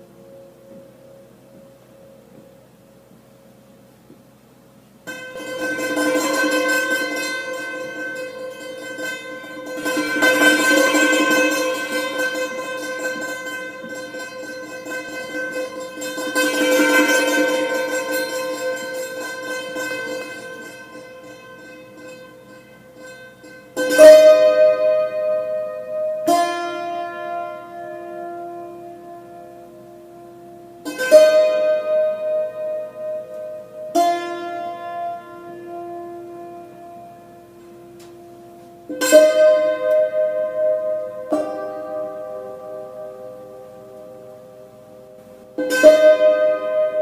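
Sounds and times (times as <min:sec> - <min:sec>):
hammered dulcimer chord: 0:05.0 - 0:47.0
sharp dulcimer strikes: 0:05.0 - 0:47.0.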